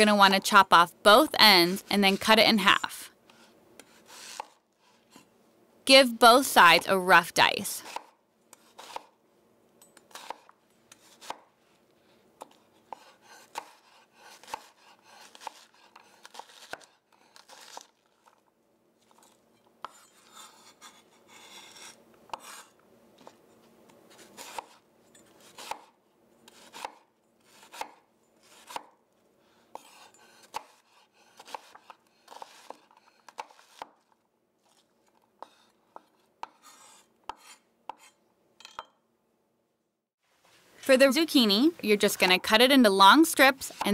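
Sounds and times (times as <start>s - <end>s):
knife chopping on wooden board: 3.8s - 4.6s, 7.8s - 9.1s, 10.1s - 11.5s, 12.4s - 17.8s, 25.4s - 25.9s, 26.5s - 29.0s, 29.7s - 34.0s, 35.4s - 38.2s.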